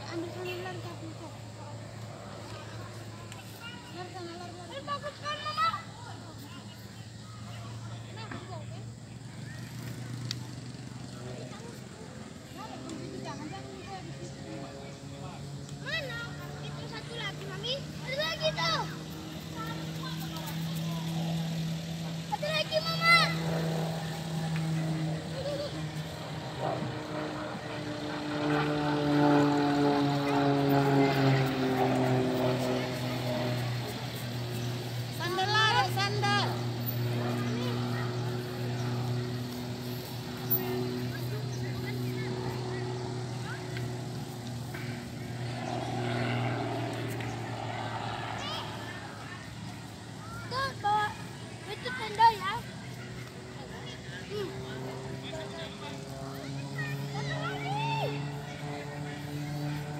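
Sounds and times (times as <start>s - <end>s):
distant propeller plane droning: 0.0s - 59.9s
people's voices: 0.0s - 59.9s
steady low hum: 0.0s - 59.9s.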